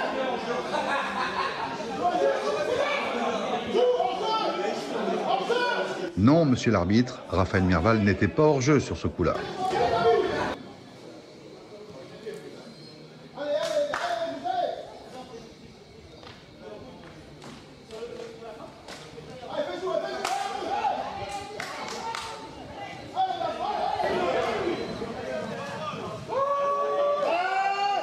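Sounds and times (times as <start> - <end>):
voices shouting and calling out: 0.0 - 28.0.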